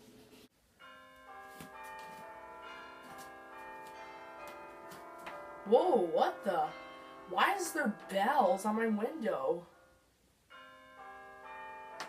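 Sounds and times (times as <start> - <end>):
bells ringing in a peal: 0.8 - 9.9, 10.5 - 12.0.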